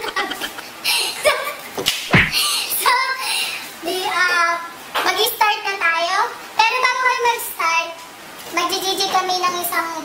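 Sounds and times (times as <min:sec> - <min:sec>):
women laughing: 0:00.0 - 0:00.7
sharp smacks: 0:01.9 - 0:02.4.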